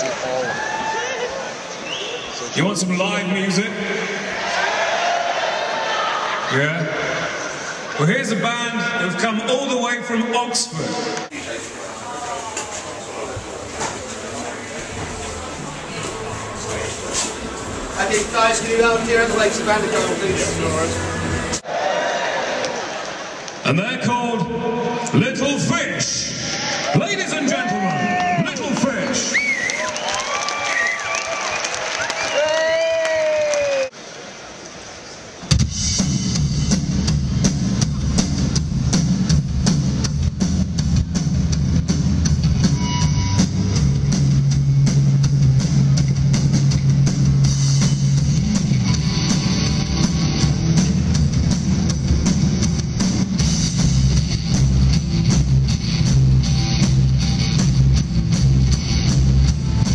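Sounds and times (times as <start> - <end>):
audience cheering and whooping: 0.0 - 1.7, 4.2 - 7.7, 21.2 - 23.5, 29.2 - 34.0
drum kit beat: 35.5 - 59.9
live rock band: 35.5 - 59.9.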